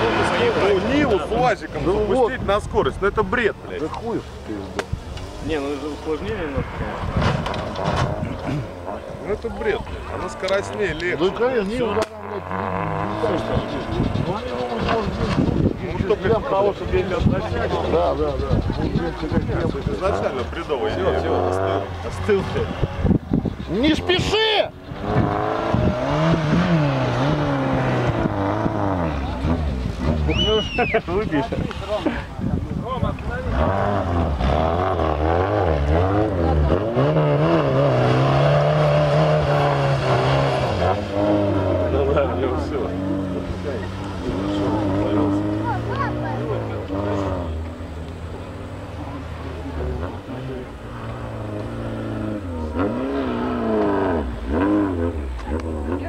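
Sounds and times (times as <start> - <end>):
distant car engine drone: 0.0 - 56.0
people talking and calling out: 0.0 - 56.0.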